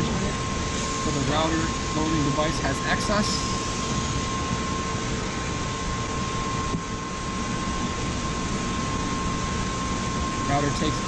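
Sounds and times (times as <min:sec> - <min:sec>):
machine whir with high hum: 0:00.0 - 0:11.0.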